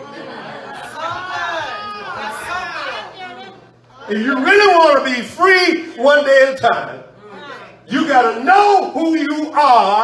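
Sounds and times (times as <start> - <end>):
voices in a large room: 0.0 - 10.0.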